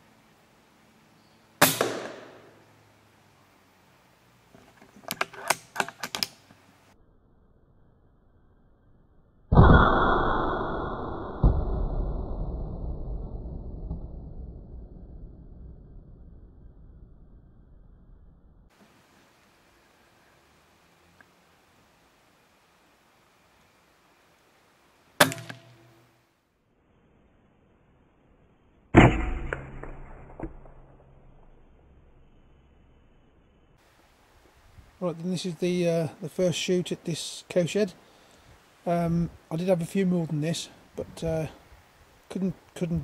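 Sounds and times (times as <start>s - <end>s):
air rifle shot crack: 1.6s - 2.6s, 9.6s - 11.8s, 25.2s - 25.8s, 29.0s - 31.1s
loud ringing hit: 9.5s - 11.8s, 29.0s - 31.4s.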